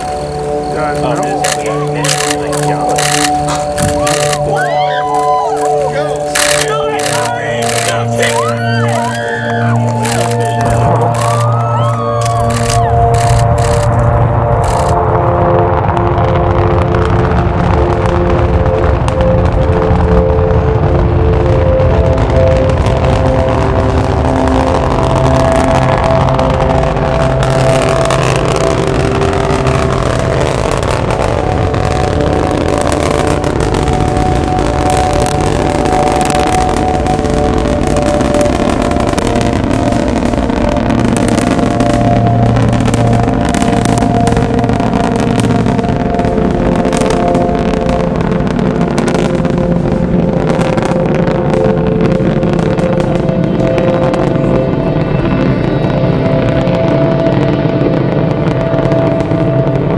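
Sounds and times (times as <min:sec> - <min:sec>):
distant rocket engines roaring: 0:00.0 - 0:59.9.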